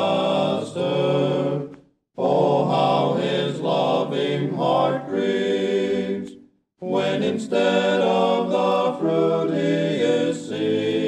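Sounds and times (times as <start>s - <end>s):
men's quartet singing a hymn: 0.0s - 11.0s.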